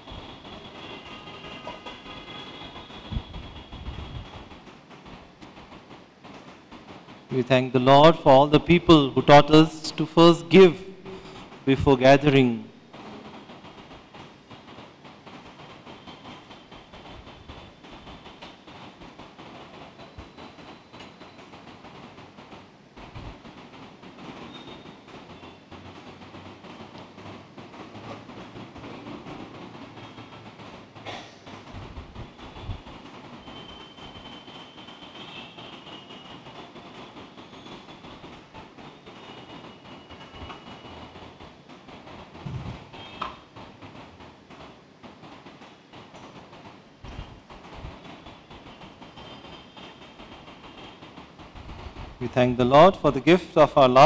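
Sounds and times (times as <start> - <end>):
low background noise: 5.3 - 13.4.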